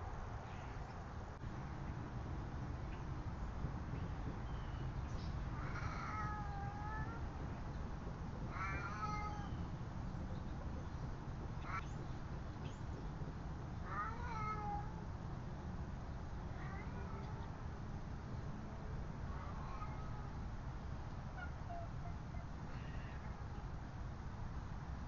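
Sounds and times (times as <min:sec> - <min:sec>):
low background rumble: 0:00.0 - 0:25.0
cat meowing: 0:05.6 - 0:07.2, 0:08.5 - 0:09.6, 0:13.9 - 0:15.0, 0:19.4 - 0:20.3.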